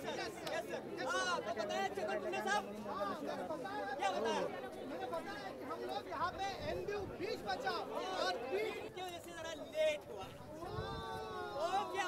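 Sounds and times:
crowd chatter: 0.0s - 12.0s
voices talking and calling out: 0.0s - 12.0s.

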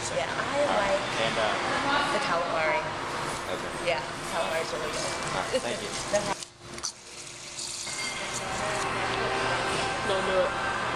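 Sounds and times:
soda pouring fizzing hiss: 6.8s - 8.0s.

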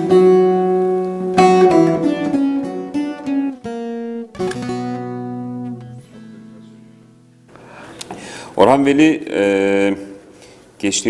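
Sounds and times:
plucked long-necked lute: 0.0s - 7.5s.

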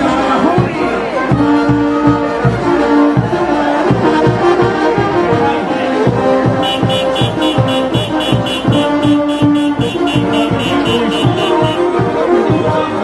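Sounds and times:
bass drum beat: 0.0s - 5.4s, 6.1s - 12.8s
brass band music: 0.0s - 13.0s.

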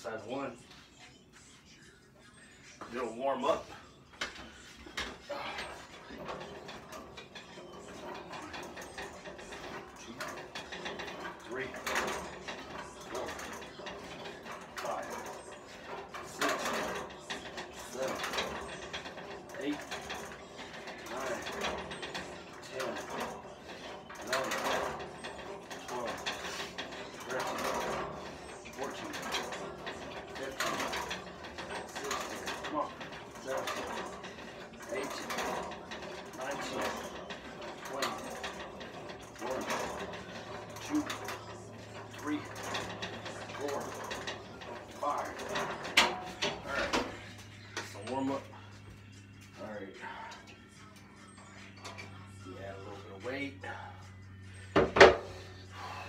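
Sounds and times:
exercise machine clatter and creak: 0.0s - 0.9s, 2.7s - 56.0s.

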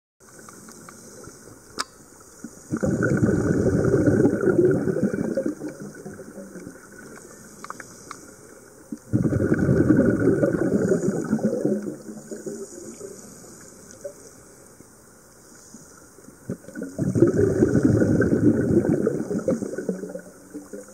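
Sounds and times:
small ticks: 0.2s - 2.7s, 6.6s - 9.1s
faint steady hiss: 0.2s - 20.9s
underwater bubbling and gurgling: 0.2s - 20.9s
sharp click: 1.8s - 2.0s.

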